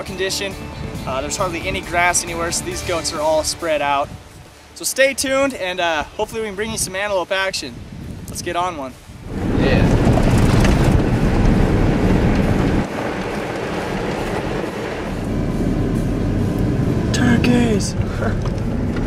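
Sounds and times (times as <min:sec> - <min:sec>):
truck engine and road rumble: 0:00.0 - 0:06.8, 0:09.1 - 0:19.0.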